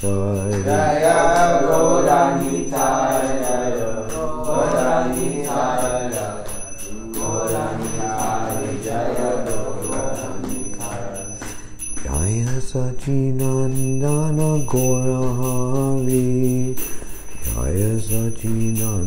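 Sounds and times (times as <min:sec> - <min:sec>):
devotional chanting: 0:00.0 - 0:19.0
hand cymbals chiming: 0:00.0 - 0:19.0.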